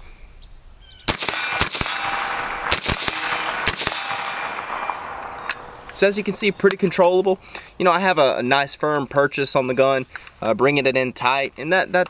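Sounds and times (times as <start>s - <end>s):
suppressed rifle shots: 1.1s - 6.6s.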